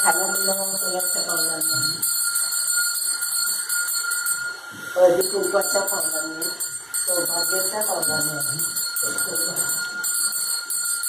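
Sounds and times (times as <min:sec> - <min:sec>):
handbell ringing: 0:00.0 - 0:11.0.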